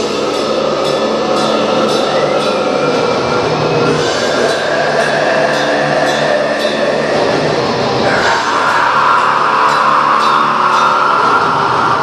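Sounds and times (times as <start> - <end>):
harsh vocal: 0.0 - 12.0
metal band playing live: 0.0 - 12.0.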